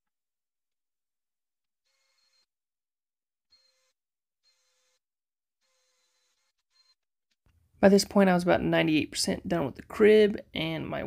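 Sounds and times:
cordless drill bursts: 3.5 - 7.1.

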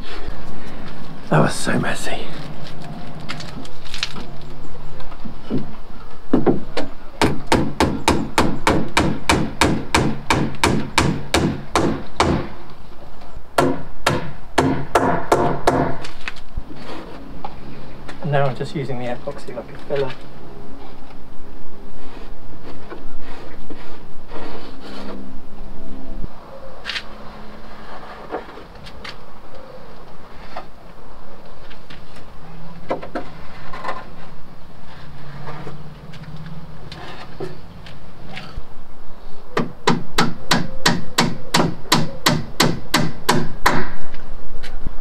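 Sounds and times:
hammer tapping nails: 7.2 - 12.5, 39.6 - 43.9
knocks and scraping on wood: 27.8 - 29.2, 31.7 - 34.4, 35.0 - 38.6.

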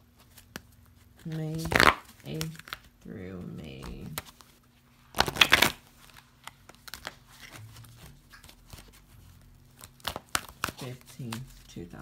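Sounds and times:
cards riffle-shuffling: 0.1 - 12.0.

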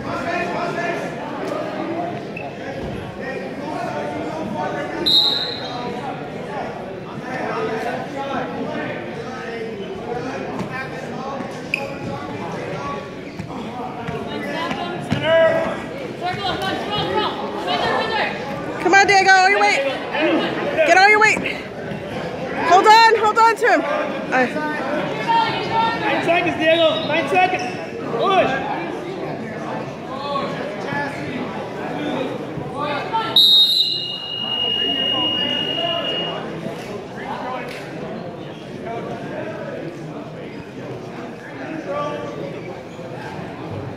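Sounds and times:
overlapping chatter in a gym: 0.0 - 43.9.

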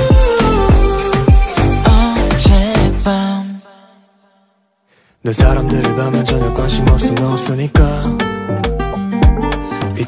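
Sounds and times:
pop music: 0.0 - 4.0, 5.2 - 10.0.

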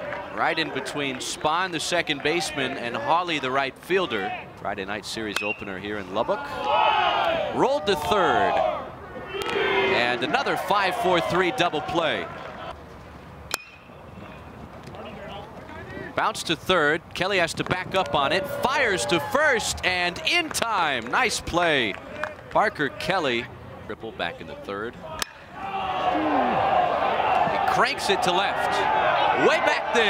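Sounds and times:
low stadium hum: 0.0 - 30.0
bat striking ball ping: 5.4 - 5.6, 13.5 - 13.9, 25.2 - 25.5
crowd cheering and shouting: 6.3 - 12.7, 17.8 - 20.1, 25.1 - 30.0.

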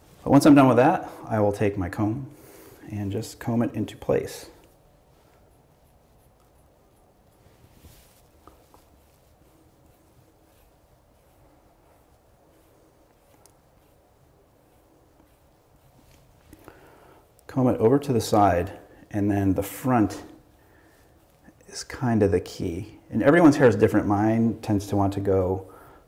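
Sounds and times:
comb scratching through hair: 2.8 - 25.8.

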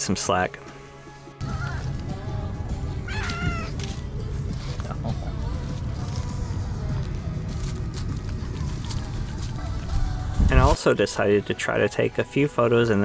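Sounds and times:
low outdoor rumble: 1.4 - 10.9
cat meowing: 3.0 - 3.8.

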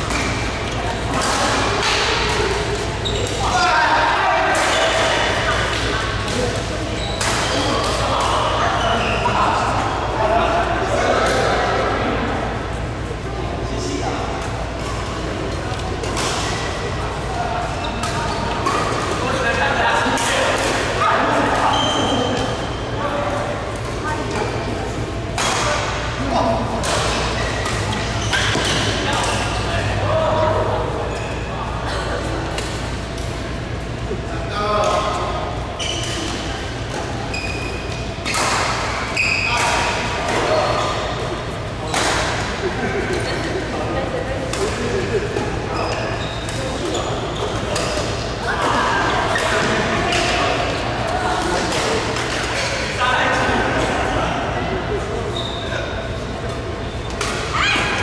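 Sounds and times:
people's voices: 0.0 - 58.0.

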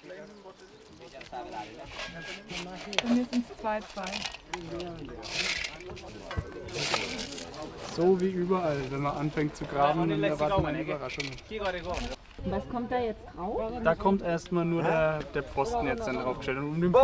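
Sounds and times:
people talking: 0.0 - 17.0
trowel scraping dry earth: 1.1 - 9.3.

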